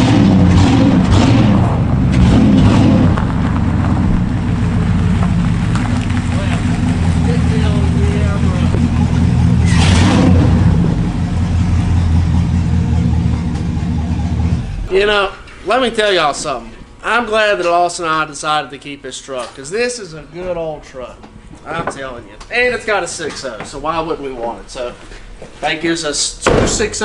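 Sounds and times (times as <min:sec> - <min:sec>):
loud truck engine revving: 0:00.0 - 0:14.9.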